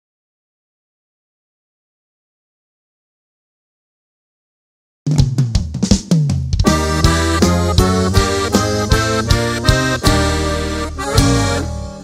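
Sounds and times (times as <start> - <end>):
drum fill on snare and drums: 5.1 - 12.0
low bass notes: 6.6 - 12.0.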